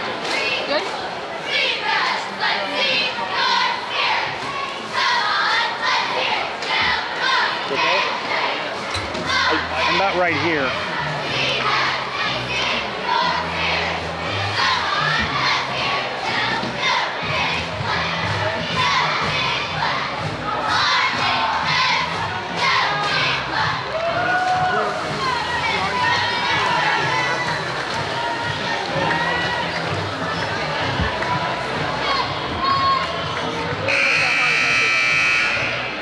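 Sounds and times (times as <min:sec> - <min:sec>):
cheerleaders shouting a chant: 0:00.0 - 0:36.0
gymnasium crowd noise: 0:00.0 - 0:36.0.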